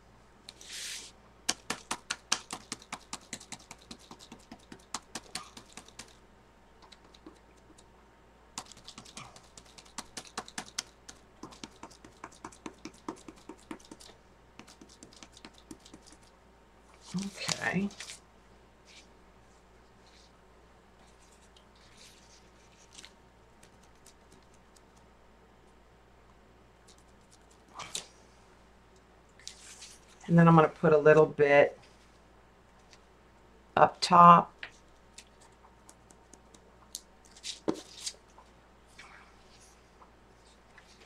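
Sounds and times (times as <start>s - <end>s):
rapid light tapping: 1.5s - 6.2s, 6.8s - 7.9s, 8.6s - 16.3s.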